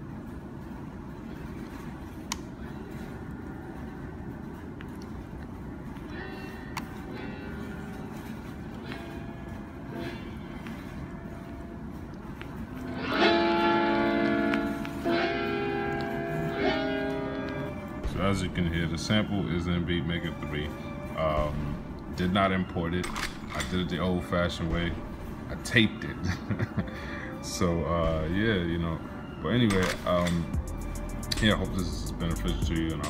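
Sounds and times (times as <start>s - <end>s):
faint held notes: 0.0s - 23.0s
loud sustained chords: 6.0s - 23.0s, 23.7s - 26.8s, 27.4s - 33.0s.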